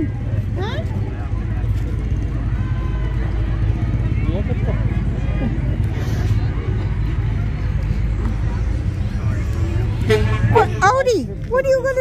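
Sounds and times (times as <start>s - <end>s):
crowd chatter: 0.0s - 12.0s
truck engine rumbling: 0.0s - 12.0s.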